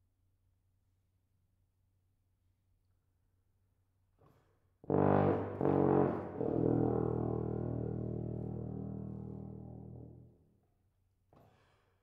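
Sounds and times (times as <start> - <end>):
tuba notes: 4.8 - 10.2
faint breath: 11.4 - 12.0.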